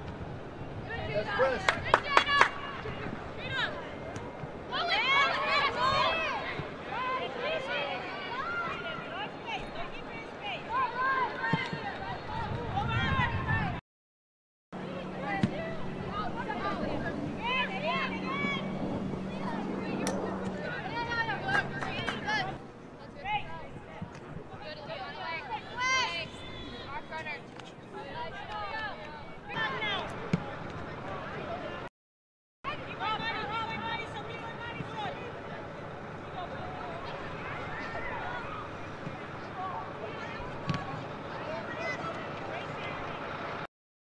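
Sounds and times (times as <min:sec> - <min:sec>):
outdoor noise: 0:00.0 - 0:13.8, 0:14.7 - 0:31.9, 0:32.6 - 0:43.7.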